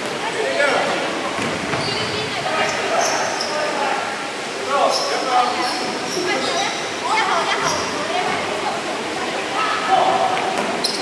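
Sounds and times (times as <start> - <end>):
voices echoing in a hall: 0.0 - 11.0
sneaker squeaks: 1.7 - 3.6, 4.9 - 8.0, 10.6 - 11.0.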